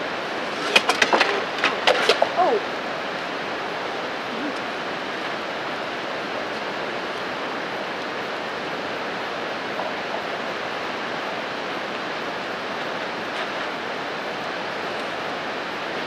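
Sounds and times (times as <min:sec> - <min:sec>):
river rushing: 0:00.0 - 0:16.0
sharp clattering knocks: 0:00.5 - 0:02.4.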